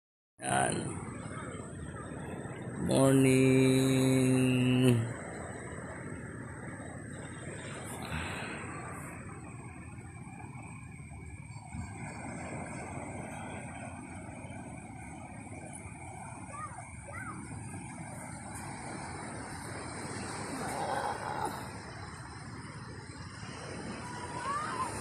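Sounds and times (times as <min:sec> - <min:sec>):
surf rushing: 0:00.4 - 0:25.0
wind: 0:00.4 - 0:25.0.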